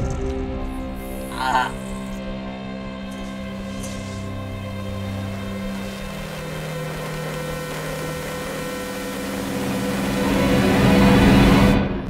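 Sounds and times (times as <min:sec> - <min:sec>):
electronic drone of held tones: 0:03.1 - 0:11.8
static hiss: 0:03.1 - 0:11.8.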